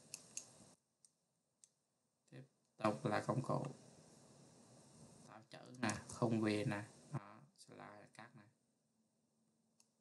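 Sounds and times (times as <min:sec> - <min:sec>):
computer mouse clicks: 0:00.0 - 0:01.8.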